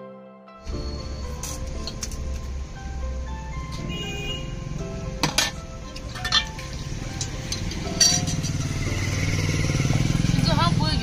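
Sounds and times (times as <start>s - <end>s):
engine running: 6.1s - 11.0s.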